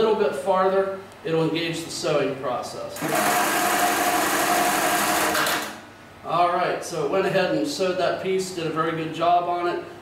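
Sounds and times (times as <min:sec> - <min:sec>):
sewing machine whine: 0:03.0 - 0:05.8.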